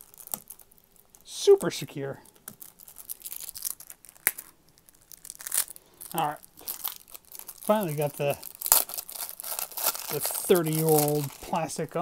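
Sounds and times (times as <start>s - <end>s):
plastic wrap tearing and crinkling: 0.0s - 1.6s, 2.3s - 12.0s.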